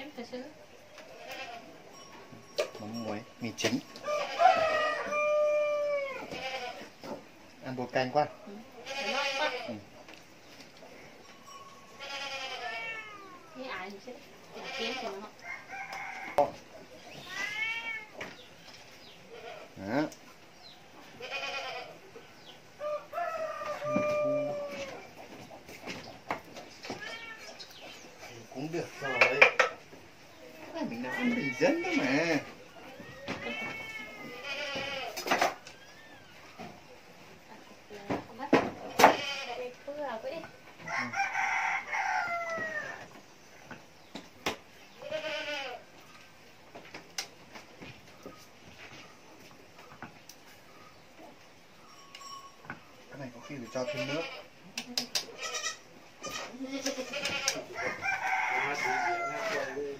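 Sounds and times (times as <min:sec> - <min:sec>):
farm animals calling: 0:00.0 - 0:46.8, 0:47.5 - 0:59.9.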